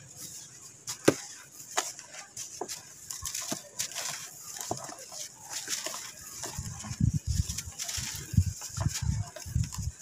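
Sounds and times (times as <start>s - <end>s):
sand cake crumbling by hand: 0.9s - 10.0s.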